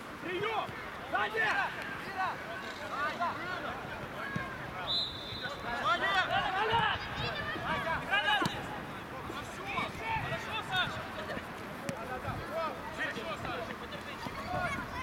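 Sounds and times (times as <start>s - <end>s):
players shouting: 0.2s - 11.1s
high whistle-like tone: 4.9s - 5.6s.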